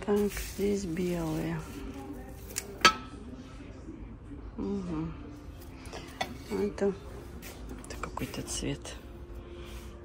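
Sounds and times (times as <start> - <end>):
ceramic platters clinking: 2.4 - 3.3.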